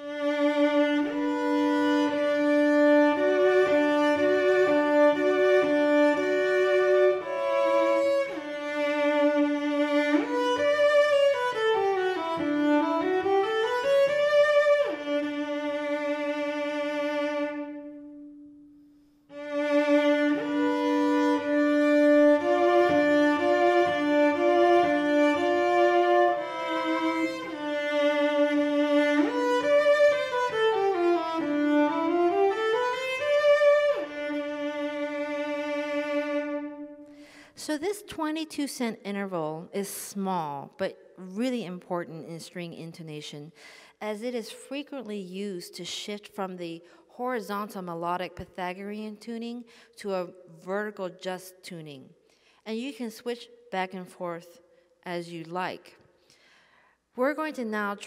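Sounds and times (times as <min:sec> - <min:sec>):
bowed cello: 0:00.0 - 0:18.7, 0:19.3 - 0:37.3.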